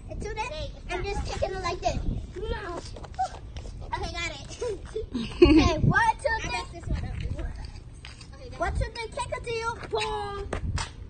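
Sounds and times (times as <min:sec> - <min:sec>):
children's voices: 0:00.1 - 0:07.7.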